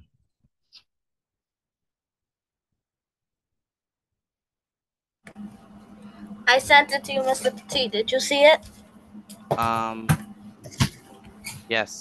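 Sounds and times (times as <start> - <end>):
low hum: 5.3 - 12.0.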